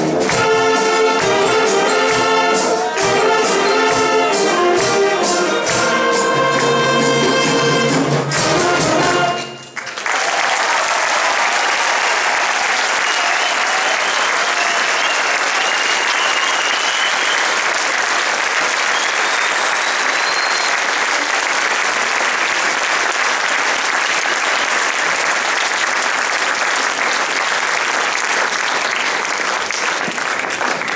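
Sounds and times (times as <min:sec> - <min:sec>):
large audience applauding: 0:00.0 - 0:30.9.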